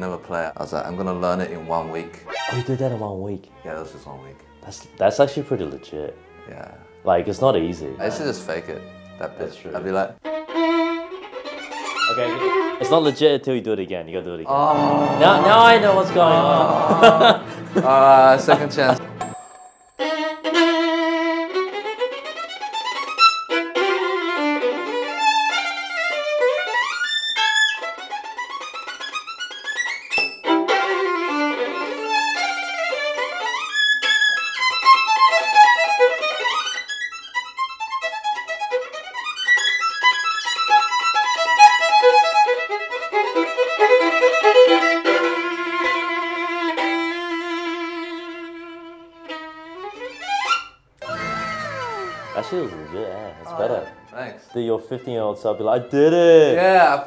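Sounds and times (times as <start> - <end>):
solo violin staccato runs: 4.4 - 13.2, 20.0 - 54.6.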